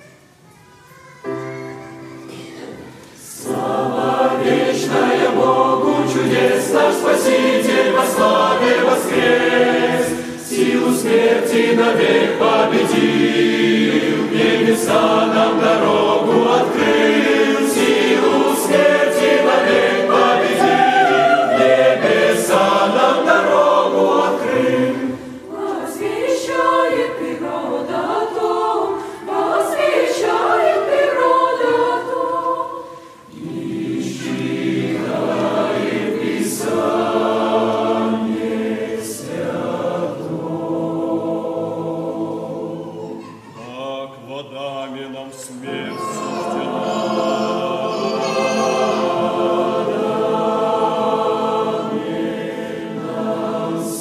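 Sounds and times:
mixed choir singing a hymn: 0:03.2 - 0:54.0.

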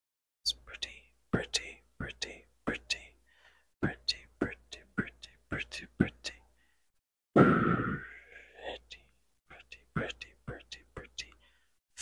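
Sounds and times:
soft whispering: 0:00.5 - 0:06.8, 0:07.9 - 0:11.7.

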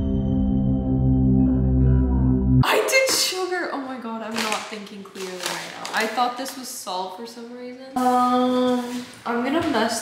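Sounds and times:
young woman talking: 0:02.6 - 0:10.0.

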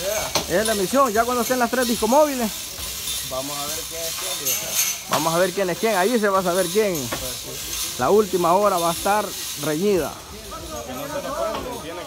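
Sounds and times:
voices talking indistinctly: 0:00.0 - 0:12.0.

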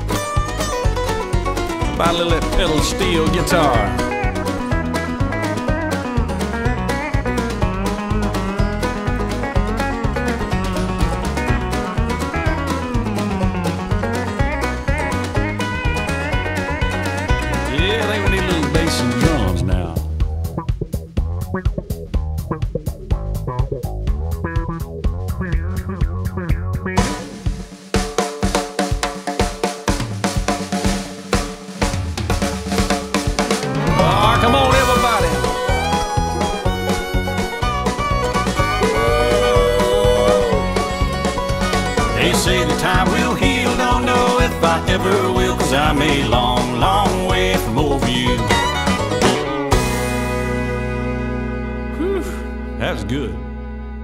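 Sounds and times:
drums: 0:00.0 - 0:53.4
country band playing: 0:00.0 - 0:54.0
steel guitar sliding notes: 0:00.2 - 0:20.1, 0:33.6 - 0:44.4.

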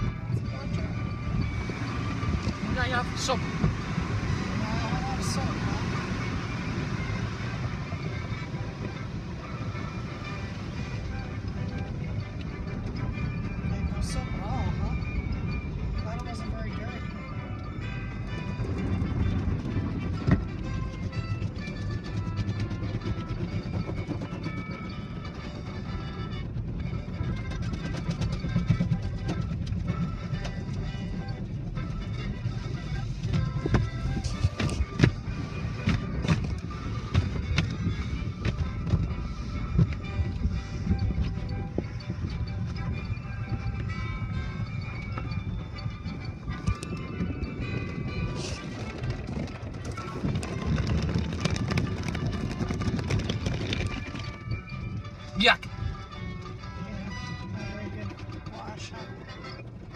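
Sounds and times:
car wash machinery rumble: 0:00.0 - 0:40.8
music: 0:00.0 - 0:59.9.

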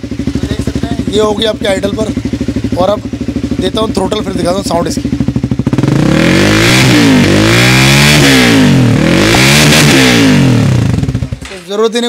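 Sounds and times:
motorcycle engine idling and revving: 0:00.0 - 0:12.0.

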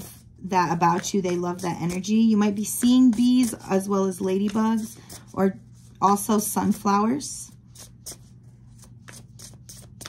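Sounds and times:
cards being shuffled: 0:00.7 - 0:05.4, 0:07.7 - 0:10.0.

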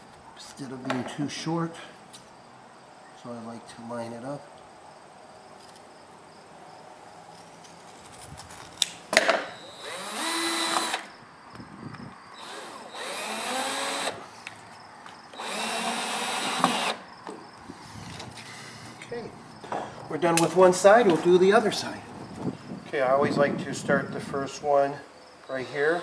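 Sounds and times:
cordless drill driving screws: 0:09.6 - 0:11.1, 0:12.4 - 0:14.2, 0:15.3 - 0:17.0.

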